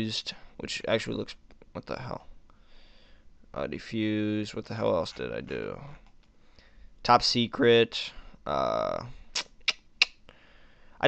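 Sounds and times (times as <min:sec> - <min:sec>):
short sharp clicks: 0:09.3 - 0:10.2.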